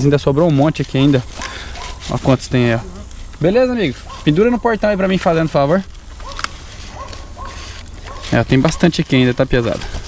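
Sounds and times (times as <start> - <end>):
paper rustling in a box: 0.3 - 10.0.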